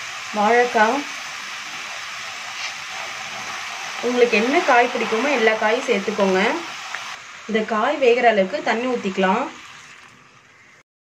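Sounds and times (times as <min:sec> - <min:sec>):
vegetables sizzling in a pan: 0:00.0 - 0:10.8.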